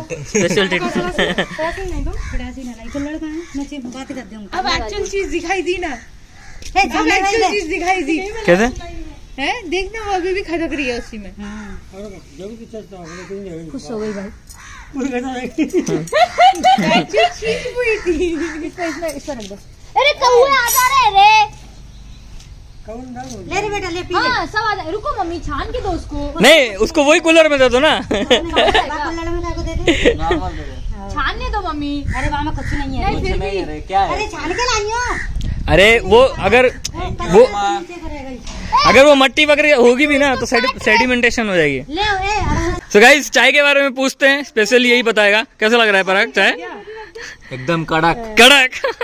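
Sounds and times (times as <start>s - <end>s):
people talking indistinctly: 0.0s - 49.0s.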